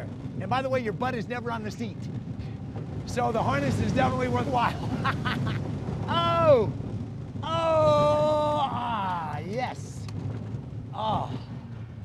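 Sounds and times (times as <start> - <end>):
roller coaster train rumbling: 0.0 - 12.0
man yelling: 7.4 - 9.7.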